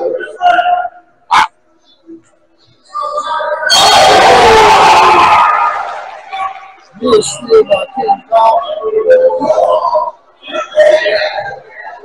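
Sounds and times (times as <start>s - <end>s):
loud distorted shout: 0.2s - 1.5s, 2.9s - 7.4s.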